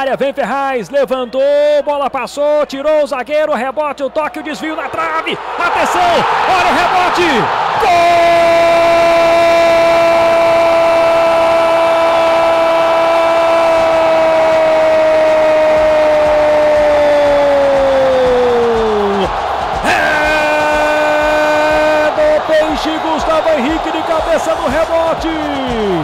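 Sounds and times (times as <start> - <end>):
radio narrator's held goal cry: 4.2 - 26.0.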